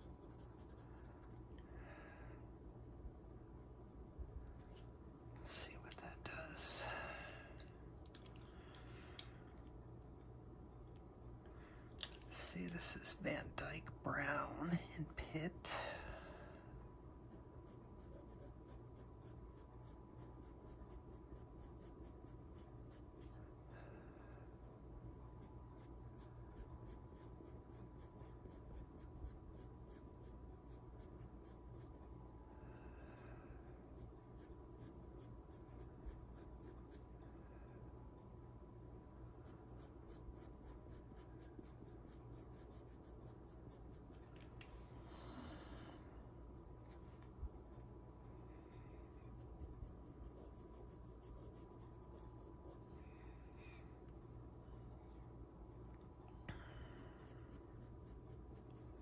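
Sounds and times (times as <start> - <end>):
pencil scratching on paper: 0.0 - 1.6, 17.3 - 23.4, 25.3 - 32.0, 33.9 - 37.1, 39.3 - 44.3, 48.7 - 53.0, 57.0 - 59.0
steady low hum: 0.0 - 59.0.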